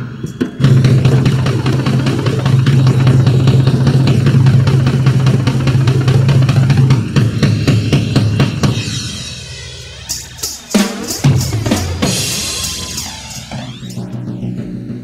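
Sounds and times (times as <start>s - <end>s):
drum roll: 0.0s - 15.0s.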